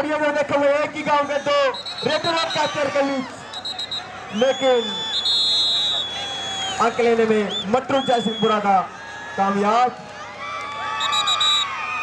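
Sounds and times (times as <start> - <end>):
man commentating over loudspeaker: 0.0 - 3.4, 4.3 - 5.1, 6.8 - 10.0
high whistle blasts: 1.2 - 8.7, 11.0 - 11.8.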